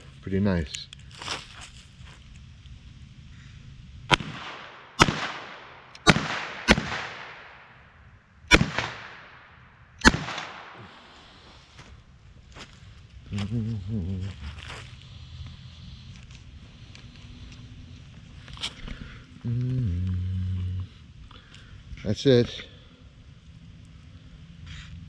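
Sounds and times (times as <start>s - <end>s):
revolver gunshots: 4.1s - 11.2s.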